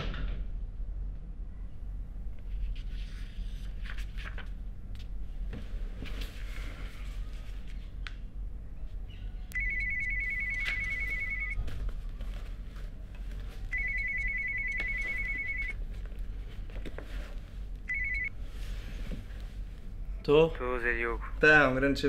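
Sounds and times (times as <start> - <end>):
mobile phone ringing: 9.5 - 11.6, 13.7 - 15.8, 17.9 - 18.3.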